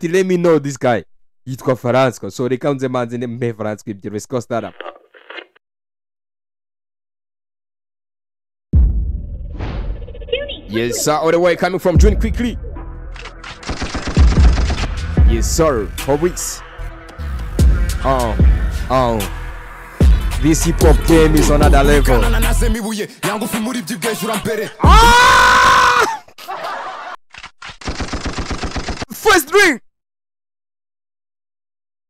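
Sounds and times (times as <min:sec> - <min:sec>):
machine-gun sound effect: 0:13.5 - 0:14.9, 0:27.8 - 0:29.1
automatic gunfire: 0:13.6 - 0:14.9, 0:27.8 - 0:29.1
deep sliding bass notes: 0:14.9 - 0:22.7.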